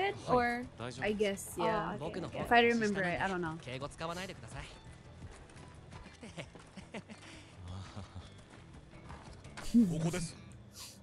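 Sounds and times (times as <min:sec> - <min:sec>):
background music: 0:00.0 - 0:11.0
character dialogue: 0:01.0 - 0:03.3, 0:09.7 - 0:10.3.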